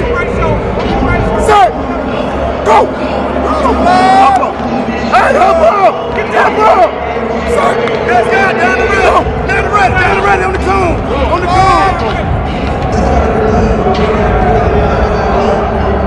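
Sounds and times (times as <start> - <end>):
crowd babble: 0.0 - 16.0
people shouting and calling: 0.2 - 16.0.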